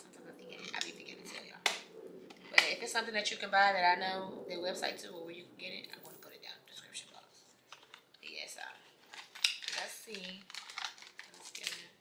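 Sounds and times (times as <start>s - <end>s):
plastic wrapping clicks and crinkles: 7.7s - 12.0s.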